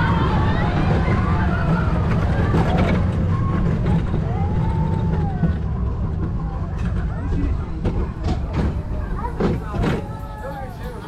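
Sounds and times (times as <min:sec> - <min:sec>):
roller coaster wheels rumbling: 0:00.0 - 0:11.0.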